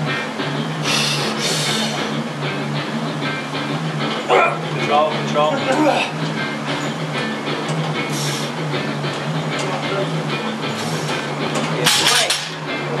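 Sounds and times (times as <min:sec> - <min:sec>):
background music with steady beat: 0:00.0 - 0:13.0.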